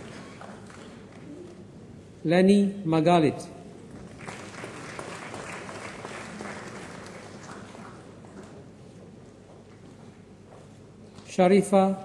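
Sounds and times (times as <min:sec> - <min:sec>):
audience applauding: 0:00.0 - 0:01.4, 0:04.0 - 0:08.4.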